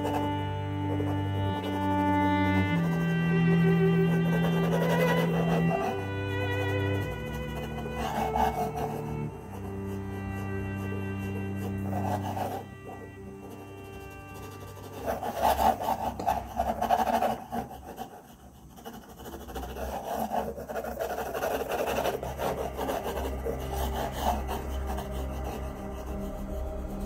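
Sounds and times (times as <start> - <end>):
pencil scratching on paper: 0.0 - 27.0.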